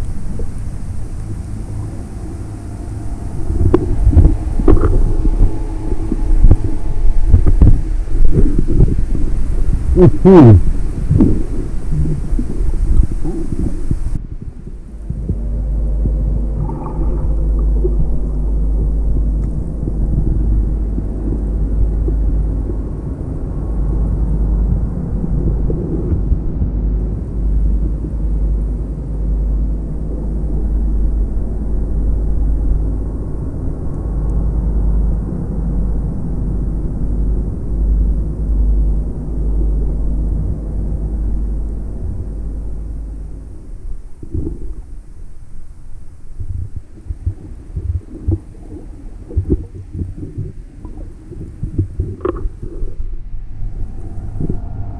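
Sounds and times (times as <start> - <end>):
low steady hum: 0.0 - 54.9
muffled underwater rumble: 0.0 - 54.9.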